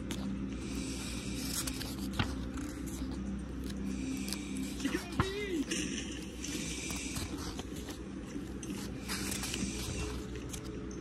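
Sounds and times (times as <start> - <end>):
comic book pages flipping: 0.0 - 11.0
low background hum: 0.0 - 11.0.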